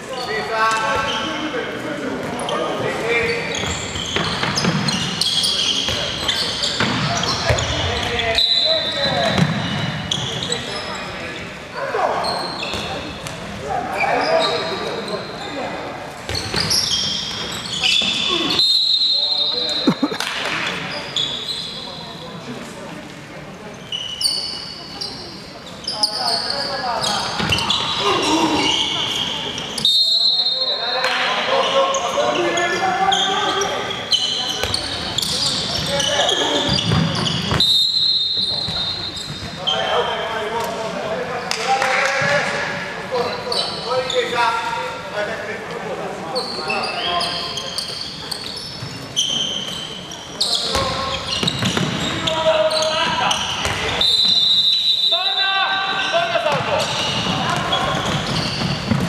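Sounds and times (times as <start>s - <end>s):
shoes squeaking: 0.1s - 22.1s, 23.7s - 40.8s, 43.2s - 44.7s, 46.3s - 59.0s
players calling out: 17.8s - 20.5s.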